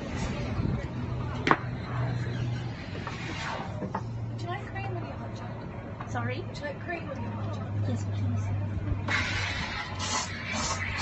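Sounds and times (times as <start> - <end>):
faint conversation: 3.7 - 9.1.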